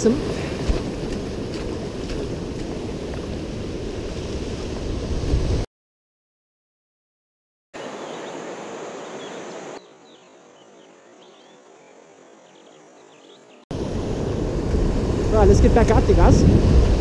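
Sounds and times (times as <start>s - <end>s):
wind on microphone: 0.0s - 5.6s, 13.7s - 17.0s
wind and water rushing: 0.0s - 5.7s, 7.8s - 10.6s, 13.7s - 17.0s
surf surging over rocks: 13.8s - 17.0s.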